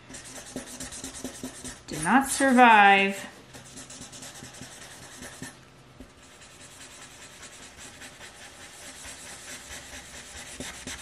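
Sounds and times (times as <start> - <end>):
marker rubbing on paper: 0.1 - 2.0, 3.5 - 5.6, 6.2 - 11.0.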